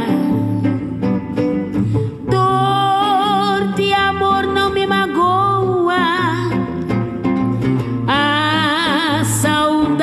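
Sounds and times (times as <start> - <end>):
woman singing samba: 0.0 - 1.2, 2.1 - 10.0
plucked guitar: 0.0 - 10.0.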